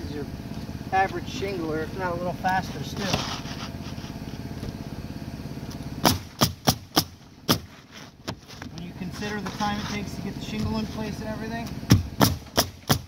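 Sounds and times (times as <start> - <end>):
steady motor drone: 0.0 - 13.0
pneumatic nailer firing nails: 5.7 - 8.4, 11.6 - 13.0.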